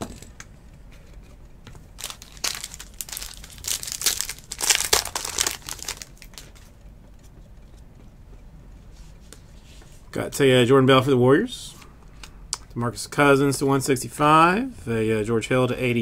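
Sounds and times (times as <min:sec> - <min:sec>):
foil wrapper crinkling and tearing: 0:01.9 - 0:06.7.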